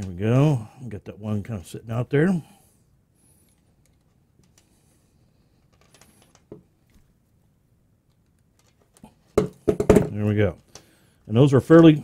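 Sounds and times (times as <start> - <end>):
gloved hands handling wires: 3.4 - 12.0.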